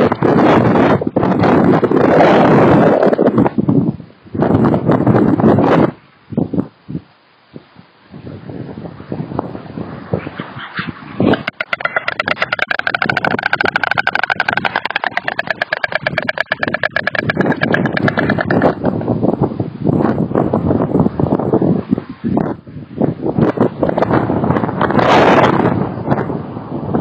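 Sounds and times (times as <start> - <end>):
wind noise: 0.0 - 27.0
storks bill-clattering: 11.3 - 19.0.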